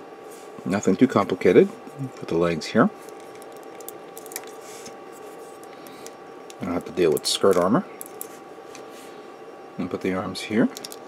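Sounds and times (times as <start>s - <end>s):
faint steady hum: 0.0s - 11.0s
plastic parts clicking together: 10.7s - 11.0s.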